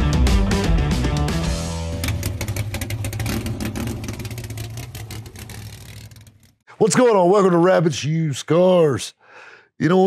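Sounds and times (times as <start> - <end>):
car engine running: 1.5 - 6.5.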